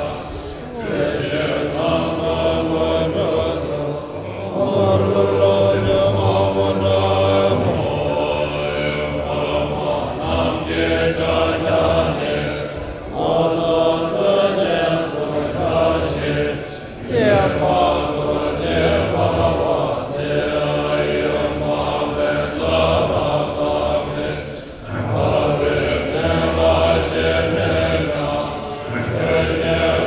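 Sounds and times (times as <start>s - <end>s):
men chanting in low voices: 0.0s - 30.0s.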